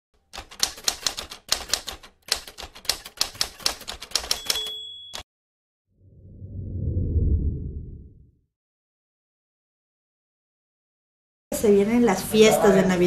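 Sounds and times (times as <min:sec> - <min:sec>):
typewriter keystrokes: 0:00.2 - 0:05.2
typewriter bell ding: 0:03.4 - 0:05.3.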